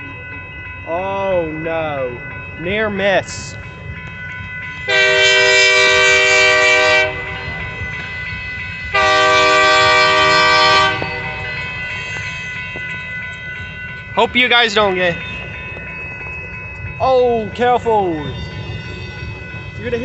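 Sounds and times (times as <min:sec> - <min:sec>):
locomotive air horn blasts: 0:04.9 - 0:07.4, 0:08.9 - 0:11.4.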